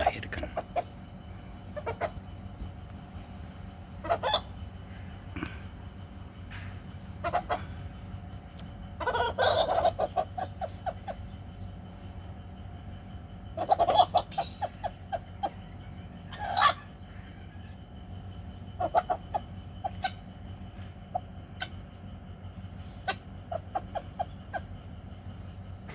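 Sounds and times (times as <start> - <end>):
chickens clucking: 0.0 - 25.9.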